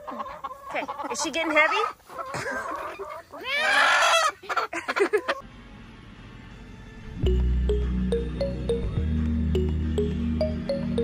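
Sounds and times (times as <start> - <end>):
hen clucking: 0.0 - 5.4.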